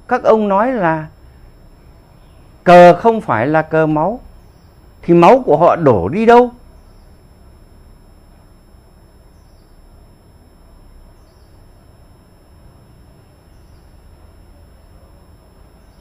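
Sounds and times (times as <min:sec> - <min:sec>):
low steady hum: 0:00.0 - 0:16.0
small bird chirping: 0:00.6 - 0:05.6, 0:06.6 - 0:16.0.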